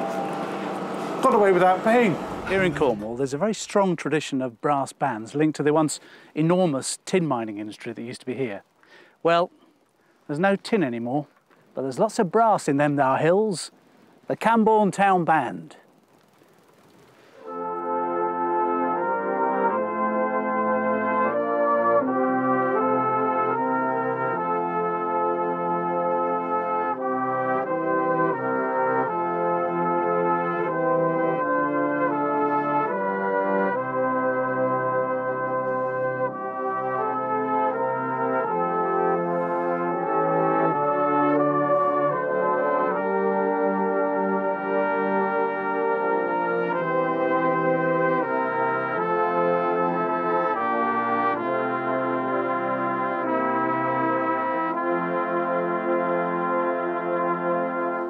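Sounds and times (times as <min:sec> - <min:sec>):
brass band playing a hymn: 0:00.0 - 0:08.5, 0:17.3 - 0:58.0.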